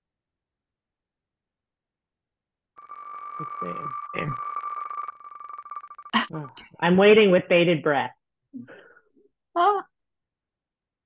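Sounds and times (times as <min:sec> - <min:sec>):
spinning wheel ticking: 0:02.8 - 0:06.2.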